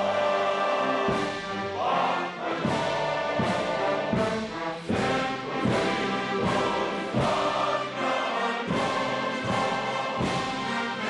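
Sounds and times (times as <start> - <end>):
military brass band playing: 0.0 - 11.0
soldiers singing: 0.0 - 11.0.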